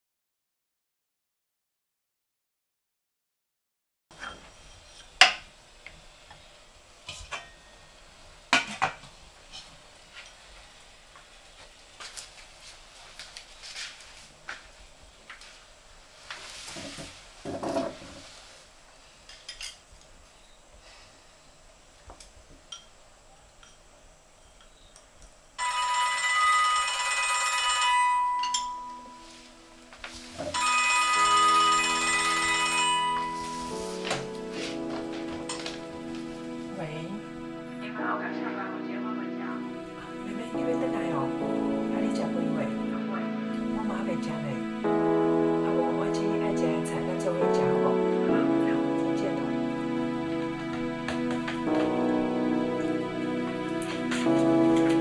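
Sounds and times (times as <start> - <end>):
telephone ringing: 25.6 - 29.4, 30.5 - 33.9
ceramic bowls clinking: 28.3 - 29.1
soft low music notes: 28.3 - 55.0.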